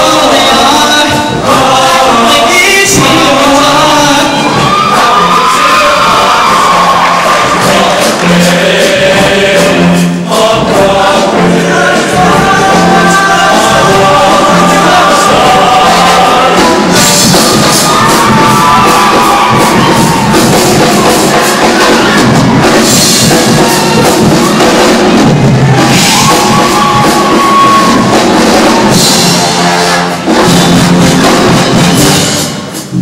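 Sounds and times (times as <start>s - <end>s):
choir singing loudly: 0.0s - 32.2s.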